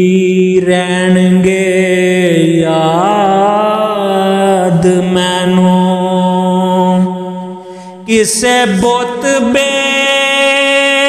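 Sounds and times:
person singing: 0.0s - 11.0s.

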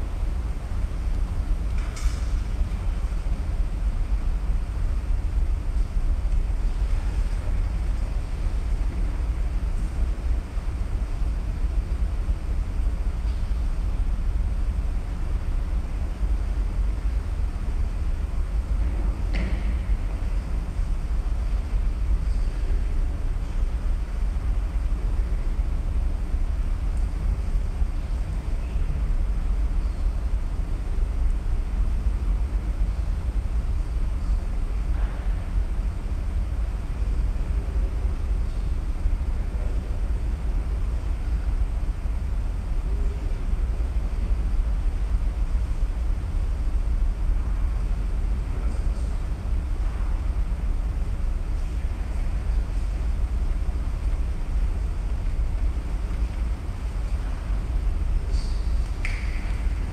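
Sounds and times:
low background rumble: 0.0s - 59.9s.

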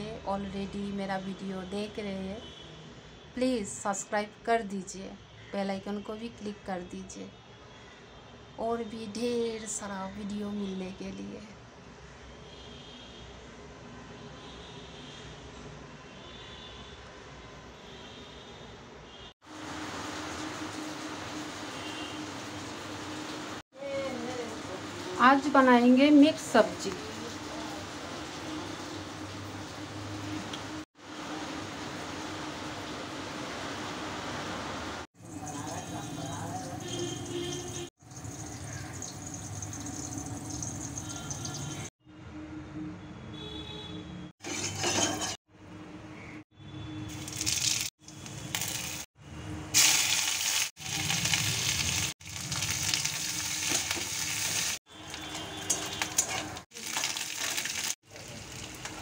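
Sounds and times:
spices sizzling in hot oil: 19.4s - 33.0s, 35.2s - 41.9s, 44.4s - 45.4s, 47.1s - 49.1s, 49.7s - 59.0s.

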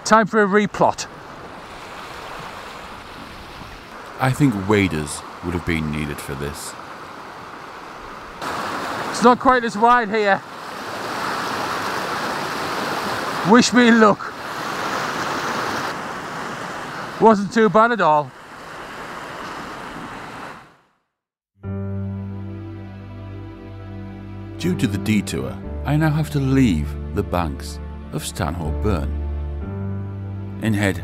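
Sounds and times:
stream rushing over stones: 1.0s - 20.8s.

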